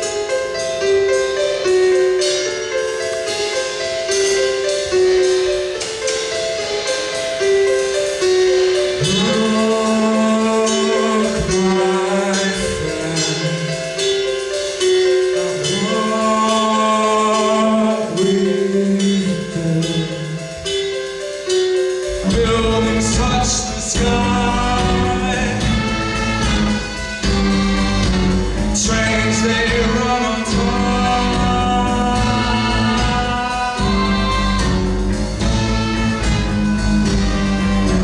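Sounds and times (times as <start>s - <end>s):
drums: 0.0s - 38.0s
electronic keyboard melody: 0.0s - 38.0s
percussion hits: 0.0s - 38.0s
bass guitar: 21.8s - 38.0s.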